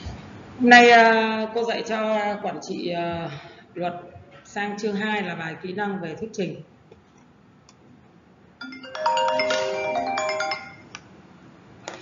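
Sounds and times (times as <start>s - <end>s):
electronic ringtone jingle: 8.6s - 10.9s.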